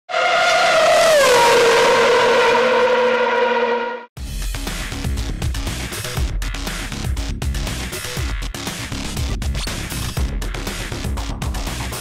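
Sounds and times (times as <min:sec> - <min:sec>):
racing car engine at high revs: 0:00.1 - 0:04.1.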